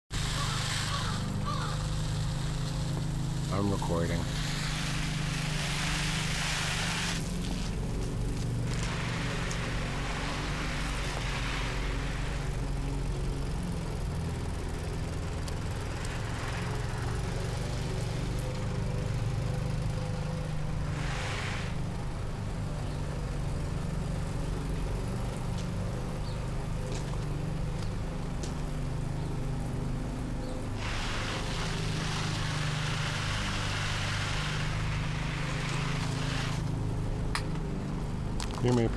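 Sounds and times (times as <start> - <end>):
hissing noise: 0.1 - 12.7, 20.4 - 22.5, 30.7 - 36.9
motor humming: 0.1 - 38.9.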